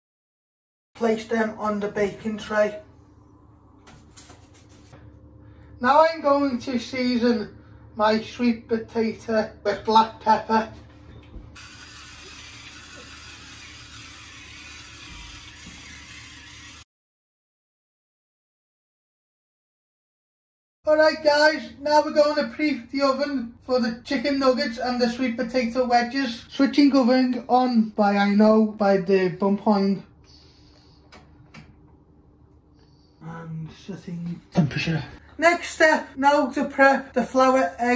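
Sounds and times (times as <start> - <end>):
faint steady hum: 1.0 - 14.8
pepper grinder grinding: 11.6 - 16.8.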